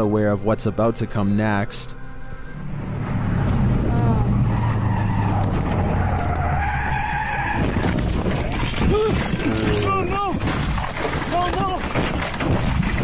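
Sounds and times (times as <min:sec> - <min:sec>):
tyres skidding: 0:00.0 - 0:13.0
car engine accelerating hard: 0:02.5 - 0:07.9.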